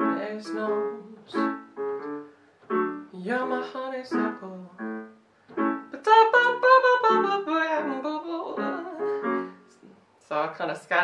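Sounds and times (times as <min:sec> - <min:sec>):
electric piano chords: 0:00.0 - 0:09.8.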